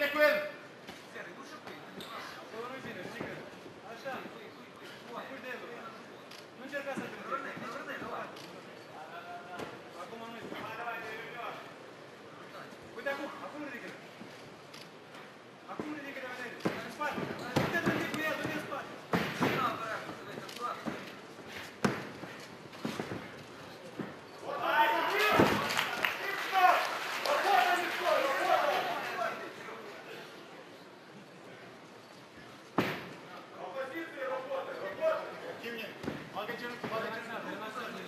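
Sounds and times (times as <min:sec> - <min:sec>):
fighters thudding against ropes: 0:16.6 - 0:24.4, 0:32.7 - 0:33.2
bodies thumping on mat: 0:21.8 - 0:24.2.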